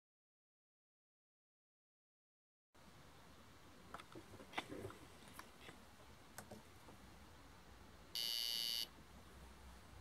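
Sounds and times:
short high-pitched electronic beep: 8.2 - 8.9.

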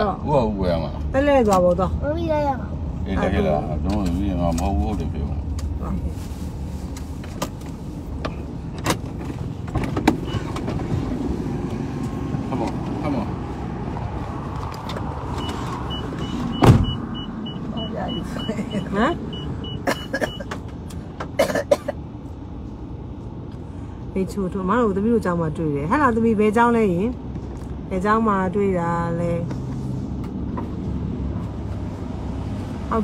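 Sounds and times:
engine and road rumble: 0.0 - 33.0.

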